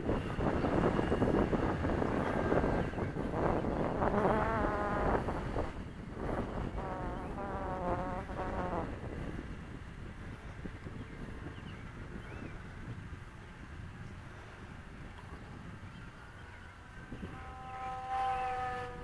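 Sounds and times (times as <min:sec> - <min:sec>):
wind rumble on microphone: 0:00.0 - 0:19.0
model airplane motor whining: 0:00.8 - 0:09.5, 0:16.8 - 0:19.0.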